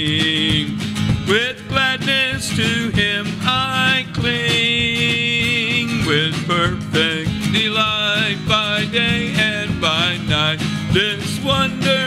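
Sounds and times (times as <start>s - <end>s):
man singing gospel song: 0.0s - 12.0s
strummed acoustic guitar: 0.0s - 12.0s.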